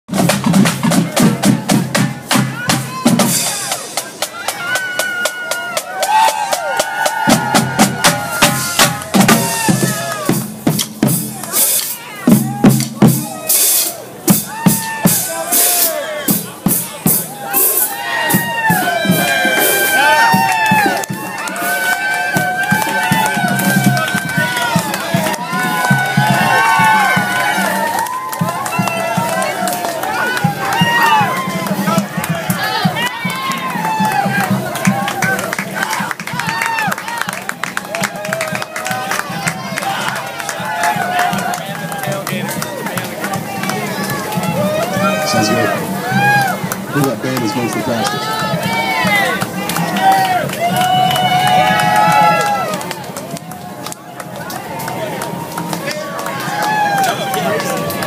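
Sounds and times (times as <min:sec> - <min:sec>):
snare drum strokes: 0:00.1 - 0:24.0
crowd shouting: 0:01.0 - 0:10.4, 0:11.3 - 0:58.0.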